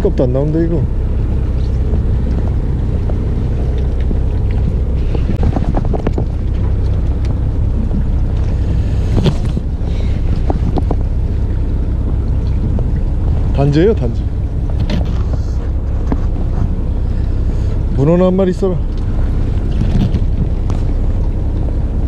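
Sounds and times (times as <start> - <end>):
boat engine rumble: 0.0 - 22.0
wind buffeting microphone: 0.0 - 22.0.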